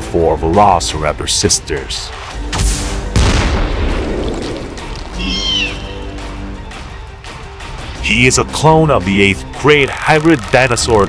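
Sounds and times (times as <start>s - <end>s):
background music: 0.0s - 11.0s
cartoon baby dinosaur squeal: 5.2s - 5.9s.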